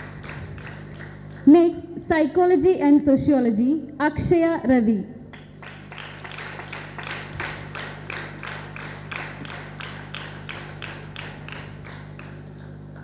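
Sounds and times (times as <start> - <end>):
audience clapping: 0.0 - 1.5, 5.3 - 13.0
steady low hum: 0.0 - 13.0.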